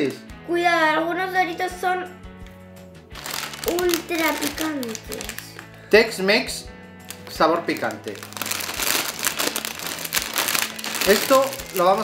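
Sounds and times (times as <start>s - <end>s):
foil snack bag crinkling: 3.2s - 5.7s, 7.1s - 12.0s.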